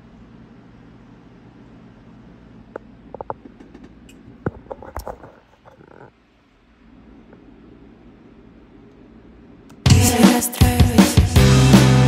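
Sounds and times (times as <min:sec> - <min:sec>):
low steady hum: 0:00.0 - 0:09.9.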